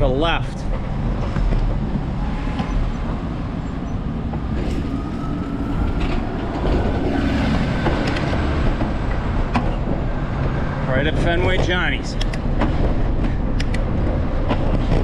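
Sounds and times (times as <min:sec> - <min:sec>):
low rumble: 0:00.0 - 0:15.0
bus engine driving past: 0:00.9 - 0:11.3
faint rising whine: 0:03.9 - 0:09.1
car driving past: 0:04.4 - 0:10.9
sharp clicks: 0:12.1 - 0:12.8, 0:13.5 - 0:13.9.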